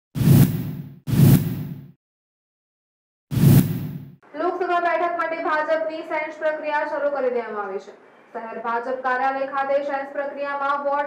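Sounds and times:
whoosh sound effect: 0.2s - 1.9s, 3.3s - 4.2s.

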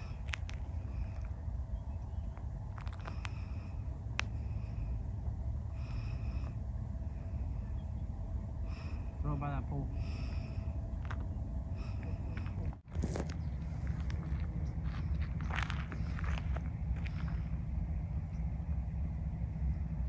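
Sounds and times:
wind rumble on microphone: 0.0s - 9.2s, 9.9s - 20.0s.

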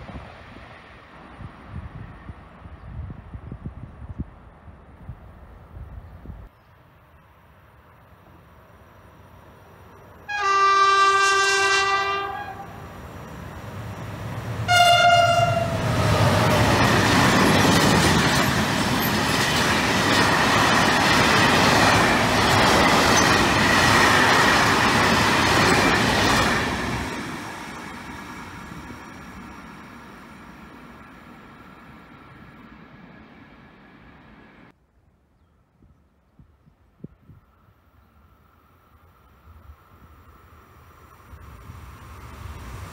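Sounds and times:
freight train horn blasts: 10.3s - 12.9s, 14.6s - 16.6s.

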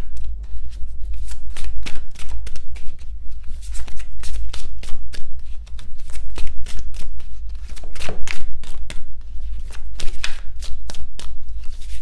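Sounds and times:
cards being shuffled: 0.0s - 12.0s
steady low hum: 0.0s - 12.0s.

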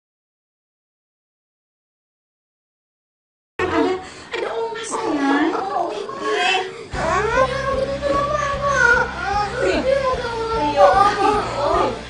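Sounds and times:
young child crying: 5.5s - 12.0s.

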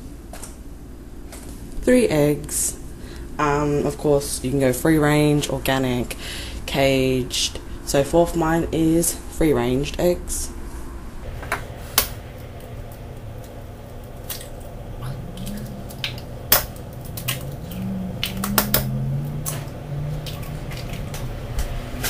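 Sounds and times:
eggs cracking on metal bowl: 12.0s - 21.8s.

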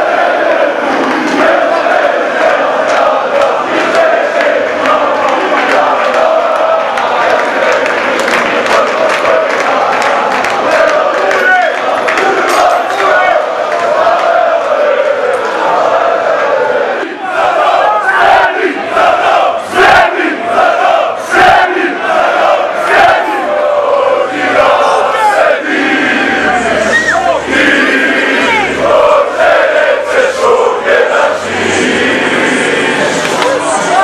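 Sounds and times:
crowd chanting and singing: 0.0s - 34.0s
fans shouting: 0.0s - 34.0s.

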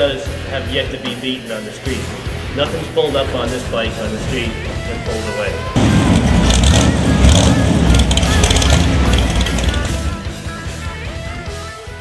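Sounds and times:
rock music: 0.0s - 12.0s
motorcycle engine rumble: 5.6s - 10.4s.

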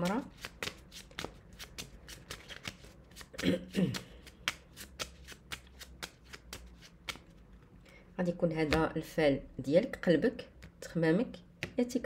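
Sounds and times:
playing cards being shuffled: 0.0s - 7.4s.

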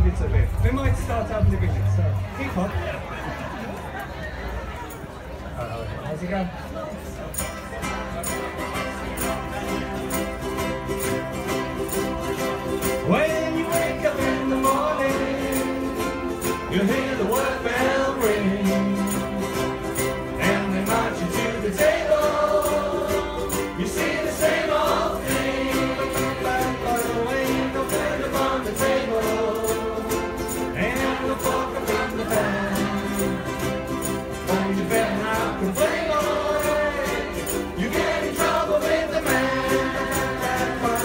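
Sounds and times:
ukulele ensemble strumming: 0.0s - 5.6s, 6.9s - 41.0s
group singing: 12.8s - 41.0s.

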